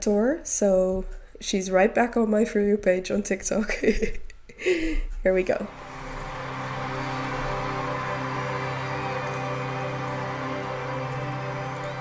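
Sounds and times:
sustained musical chord: 0:05.5 - 0:12.0.

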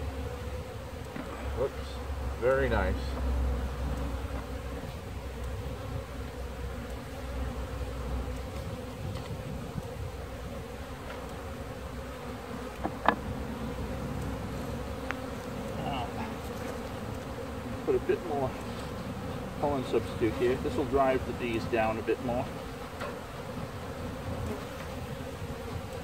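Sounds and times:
bees buzzing: 0:00.0 - 0:26.0.

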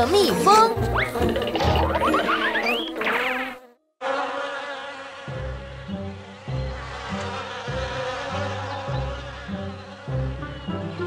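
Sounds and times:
cartoon bees buzzing: 0:00.9 - 0:11.0.

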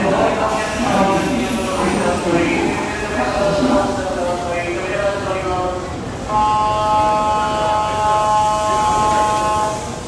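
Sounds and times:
train horn steady tone: 0:06.3 - 0:10.0.

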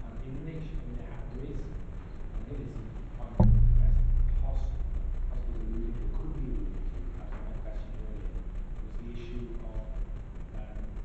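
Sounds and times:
low rumble: 0:00.8 - 0:10.5.

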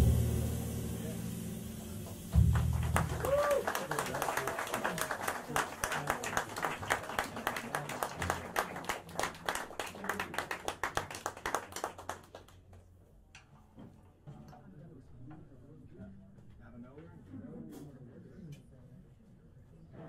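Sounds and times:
audience applauding: 0:02.4 - 0:12.8.

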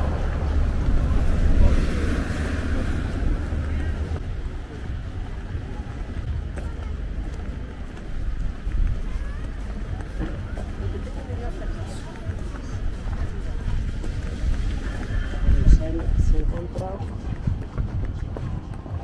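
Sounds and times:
passers-by talking: 0:00.0 - 0:19.0
wind rumbling on microphone: 0:00.0 - 0:19.0.

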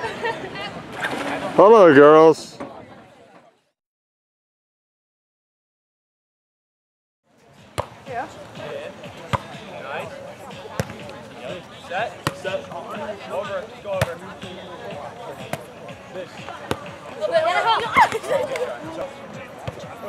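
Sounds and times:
voices of players and onlookers: 0:00.0 - 0:03.8, 0:07.3 - 0:20.0.

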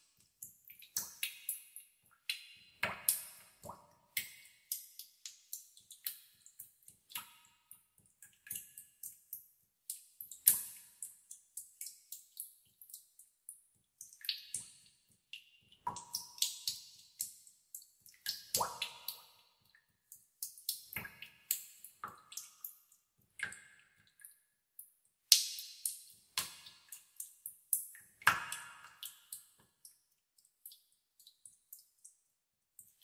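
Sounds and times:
water drops plinking into pools: 0:00.0 - 0:32.2.

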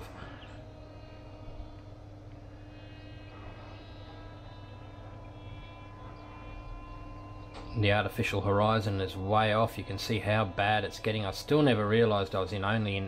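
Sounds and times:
electric motor whine: 0:00.0 - 0:13.0.

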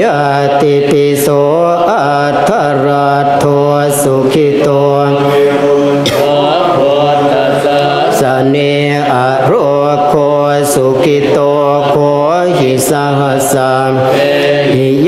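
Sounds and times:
monks chanting in unison: 0:00.0 - 0:15.0.

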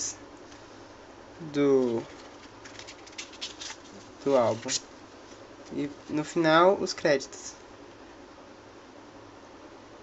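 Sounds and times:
paper booklet rustling: 0:01.8 - 0:06.4.

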